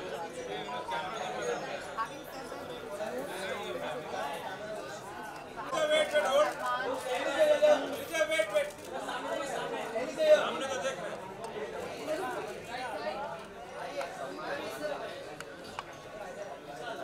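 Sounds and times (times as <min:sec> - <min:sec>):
overlapping chatter of voices: 0:00.0 - 0:17.0.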